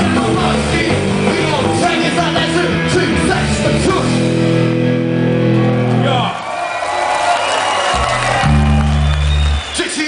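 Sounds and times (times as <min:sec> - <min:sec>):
rock band playing loud chords: 0:00.0 - 0:06.4, 0:07.8 - 0:09.7.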